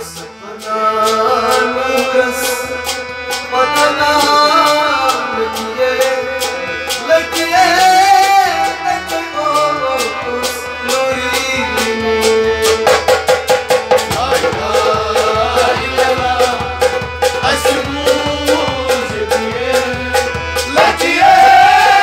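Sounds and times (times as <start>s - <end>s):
men singing folk song: 0.0s - 13.0s, 13.9s - 22.0s
hand percussion strokes: 0.0s - 22.0s
harmonium playing chords: 0.0s - 22.0s.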